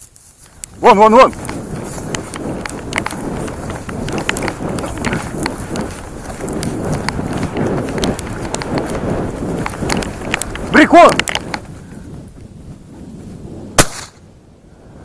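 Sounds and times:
grass stems swishing and crackling: 0:00.0 - 0:11.7
footsteps through dry grass: 0:00.0 - 0:14.1.

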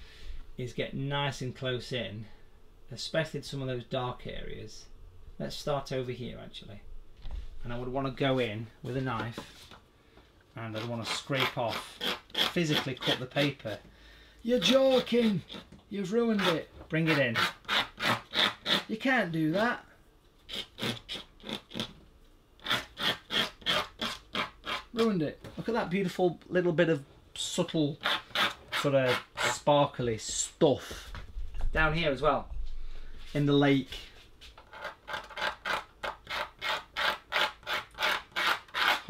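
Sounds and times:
knife blade scratching paper: 0:10.7 - 0:13.7, 0:16.3 - 0:18.9, 0:20.5 - 0:21.9, 0:22.6 - 0:25.1, 0:28.0 - 0:29.6, 0:34.6 - 0:39.0.

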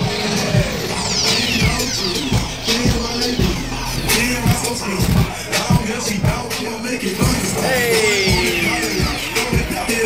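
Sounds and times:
music with heavy bass beat: 0:00.0 - 0:10.0.

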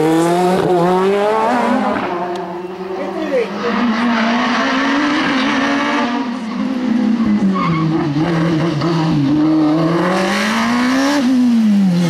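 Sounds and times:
racing engine revving: 0:00.0 - 0:12.0.

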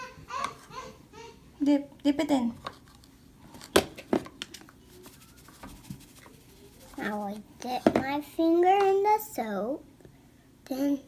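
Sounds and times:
plastic tub knocking on countertop: 0:07.8 - 0:08.1.

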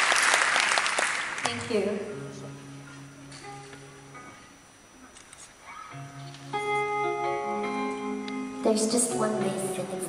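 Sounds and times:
low hall noise: 0:00.0 - 0:10.0
faint held instrument notes: 0:01.5 - 0:10.0.

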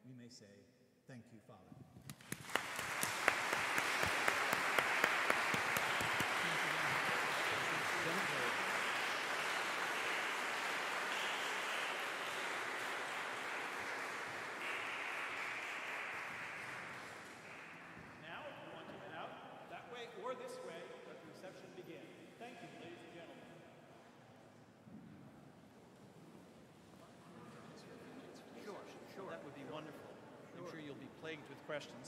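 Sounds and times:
audience applauding in a church: 0:02.0 - 0:19.3.

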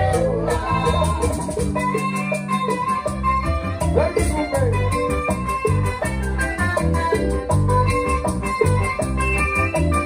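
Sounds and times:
bass guitar line: 0:00.0 - 0:10.0
congas: 0:00.0 - 0:10.0
latin dance band playing: 0:00.0 - 0:10.0.

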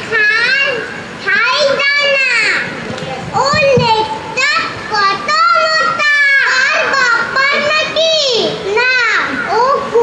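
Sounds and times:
young child speaking loudly: 0:00.0 - 0:10.0.

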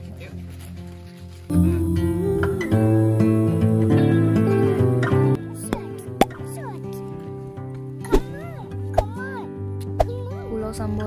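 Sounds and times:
background music sustained notes: 0:00.0 - 0:11.0.

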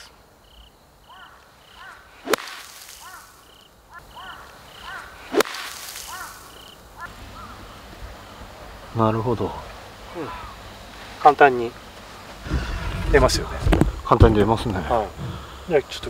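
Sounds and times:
sand spraying hiss: 0:02.1 - 0:03.6, 0:05.2 - 0:06.8
golf club striking sand: 0:02.2 - 0:03.5, 0:04.8 - 0:06.6.

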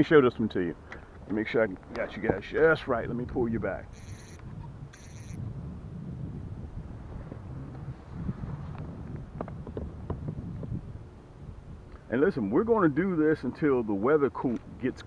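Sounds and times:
wind rumbling on microphone: 0:00.0 - 0:15.0
short high-pitched chirps: 0:03.9 - 0:05.4.

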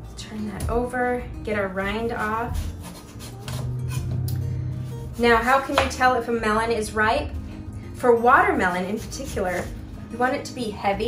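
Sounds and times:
background music: 0:00.0 - 0:11.0
knife cutting melon rind: 0:02.2 - 0:04.1, 0:08.9 - 0:09.8.

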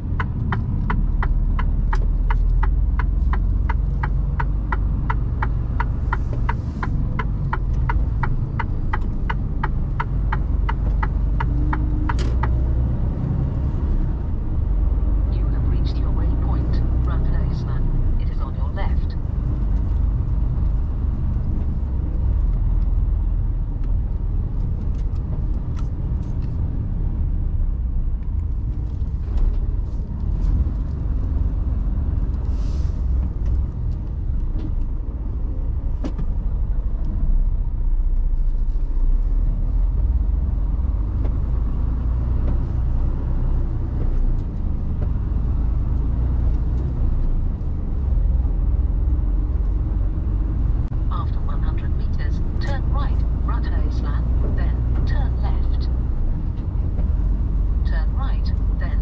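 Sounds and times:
diesel engine rumble: 0:00.0 - 0:59.0
tyres on brick road: 0:00.0 - 0:59.0.

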